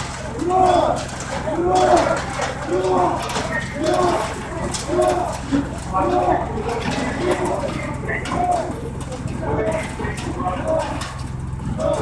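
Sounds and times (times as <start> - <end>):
voices chanting a word: 0.0 - 11.0.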